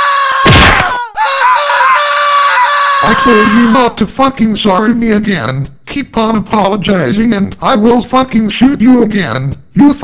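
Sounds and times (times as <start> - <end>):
high-pitched scream of pain: 0.0 - 4.0.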